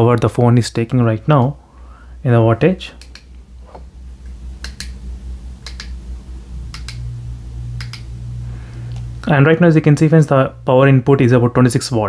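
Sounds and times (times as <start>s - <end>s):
steady low hum: 0.0s - 12.0s
low steady tone: 3.5s - 11.5s.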